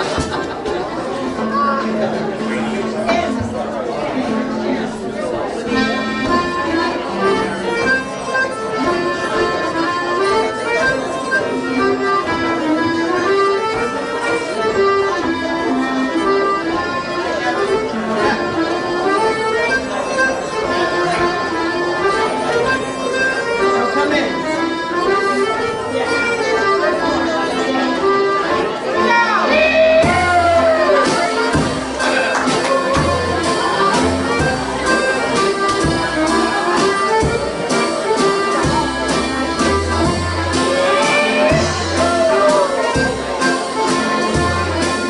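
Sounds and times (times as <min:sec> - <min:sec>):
accordions and keyed fiddle folk tune: 0:00.0 - 0:45.0
drum kit: 0:29.8 - 0:45.0.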